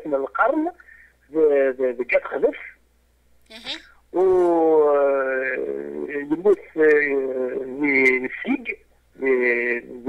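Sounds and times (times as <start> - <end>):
man talking slowly: 4.2 - 10.0.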